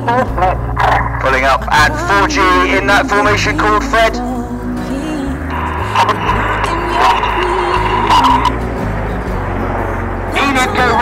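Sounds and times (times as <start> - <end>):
music over loudspeakers: 0.0 - 11.0
man commentating: 0.8 - 4.2
jet noise with steady whine: 5.5 - 11.0.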